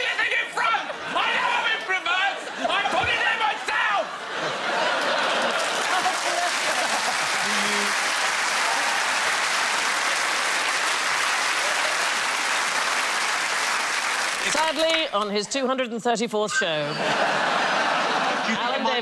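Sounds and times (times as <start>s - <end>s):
audience applauding: 4.4s - 15.4s.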